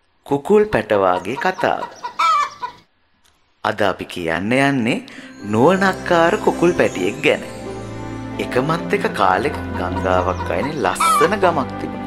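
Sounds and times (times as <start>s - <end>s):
chicken clucking: 0.7s - 2.8s, 9.4s - 11.4s.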